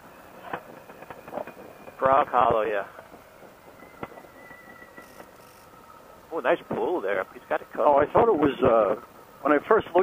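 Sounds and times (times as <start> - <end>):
faint steady high tone: 1.8 - 10.0.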